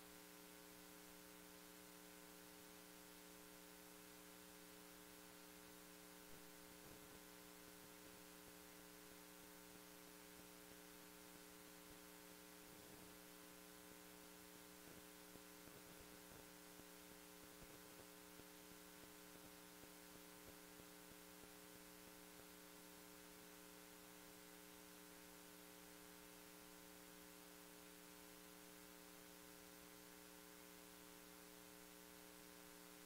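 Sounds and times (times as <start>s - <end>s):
faint electrical hum: 0.0s - 33.0s.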